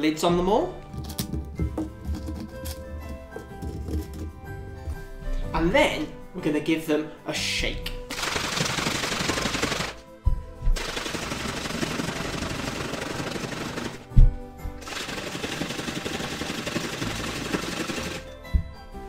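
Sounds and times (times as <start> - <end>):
background music: 0.0 - 19.0
water bottles rattling: 0.8 - 4.6.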